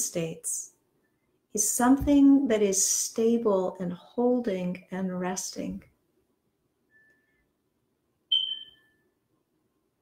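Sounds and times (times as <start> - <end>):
faint steady tone: 6.8 - 7.6, 8.3 - 9.8
short high-pitched beep: 8.3 - 9.0.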